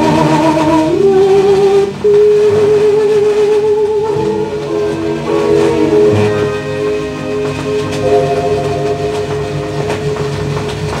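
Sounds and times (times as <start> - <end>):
record surface crackle: 2.4 - 11.0
orchestral music: 4.4 - 11.0.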